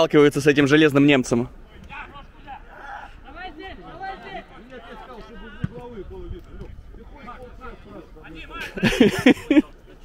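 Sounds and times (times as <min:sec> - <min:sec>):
men calling and shouting: 0:00.0 - 0:10.0.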